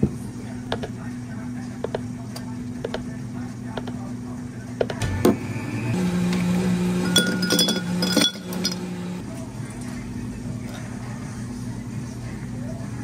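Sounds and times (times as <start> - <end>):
ice cubes clinking into glass: 7.0 - 8.9.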